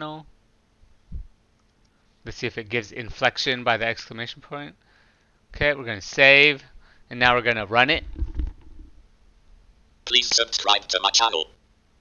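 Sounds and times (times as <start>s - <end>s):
faint clicks: 1.6s - 2.0s
low rumble: 7.9s - 9.2s.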